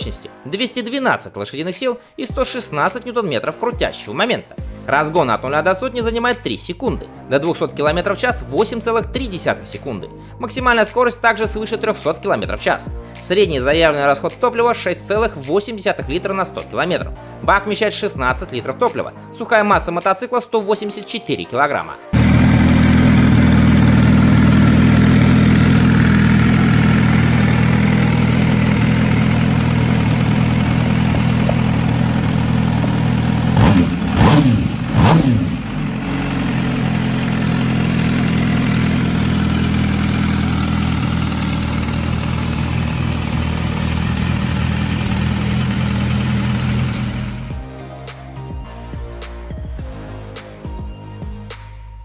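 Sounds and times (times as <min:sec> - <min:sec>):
motorcycle engine idling: 0:22.2 - 0:47.7.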